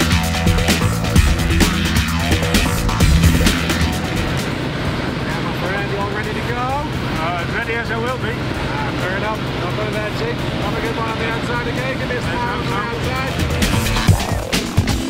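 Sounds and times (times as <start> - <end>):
music with a beat: 0.0 - 4.5, 12.9 - 15.0
plane engine drone in cabin: 0.0 - 15.0
voices: 0.4 - 14.9.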